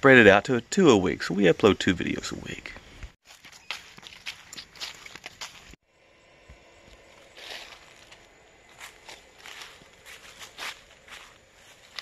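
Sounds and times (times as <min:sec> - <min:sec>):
footsteps through dry leaves: 0:03.2 - 0:05.8, 0:06.9 - 0:12.0.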